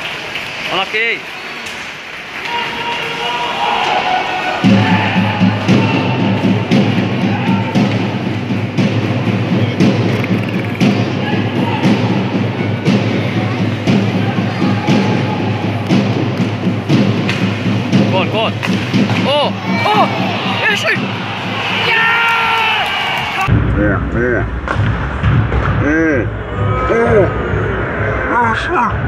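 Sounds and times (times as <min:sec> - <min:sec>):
ice rink arena din: 0:00.0 - 0:29.0.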